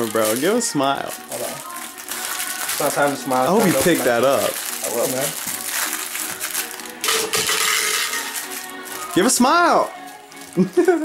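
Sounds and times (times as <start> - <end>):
plastic bottle clattering: 2.7 - 8.6
plastic bottle clinking: 7.0 - 8.6.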